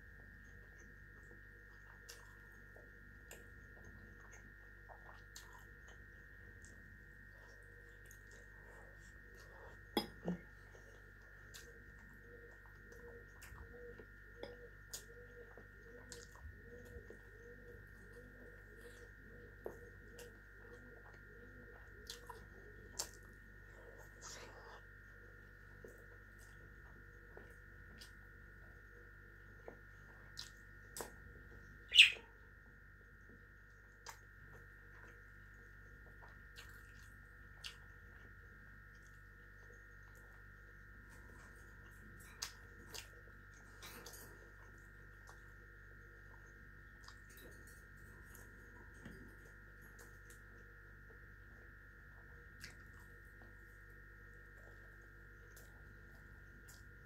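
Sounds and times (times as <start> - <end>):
faint steady hum: 0.0 - 57.0
pet bird chirping: 31.9 - 32.3.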